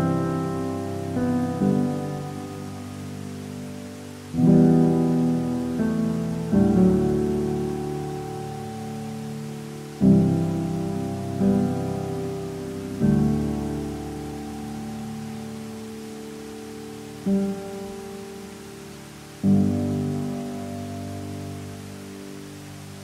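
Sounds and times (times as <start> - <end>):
rushing water: 0.0 - 23.0
slow piano chords: 0.0 - 23.0.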